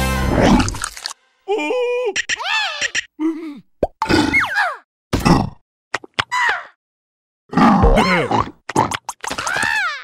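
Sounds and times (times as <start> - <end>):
cartoon insect cries and grunts: 1.5 - 3.1.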